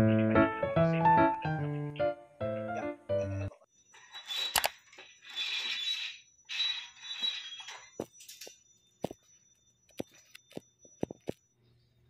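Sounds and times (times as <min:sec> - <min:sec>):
roller blind chain and roller: 0:03.9 - 0:08.5.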